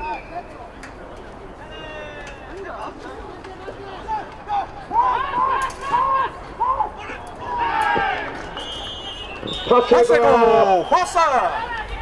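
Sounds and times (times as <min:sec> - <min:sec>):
players yelling: 0:01.6 - 0:12.0.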